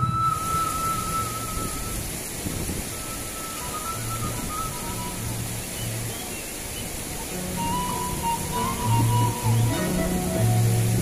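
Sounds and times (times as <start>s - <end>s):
bamboo flute long note: 0.0s - 6.2s, 7.1s - 11.0s
rushing water hiss: 0.0s - 11.0s
low musical accompaniment: 2.9s - 11.0s.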